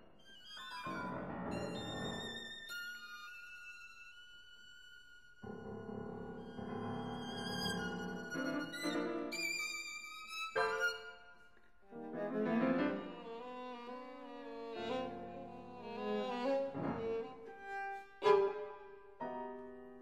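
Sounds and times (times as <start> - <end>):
violin viola and piano trio: 0.0 - 20.0.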